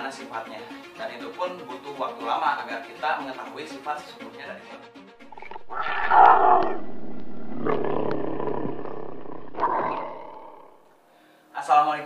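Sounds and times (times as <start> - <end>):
animal roar: 5.2 - 10.9.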